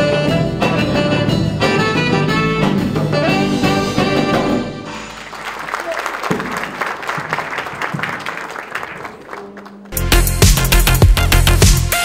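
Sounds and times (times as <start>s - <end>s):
audience applauding: 4.9s - 10.0s
electronic music with heavy beat: 10.0s - 12.0s.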